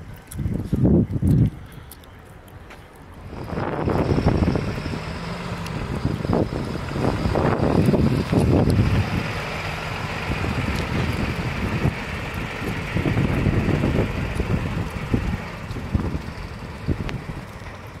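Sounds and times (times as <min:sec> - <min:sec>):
wind buffeting microphone: 0:00.0 - 0:18.0
diesel engine driving off: 0:02.0 - 0:18.0.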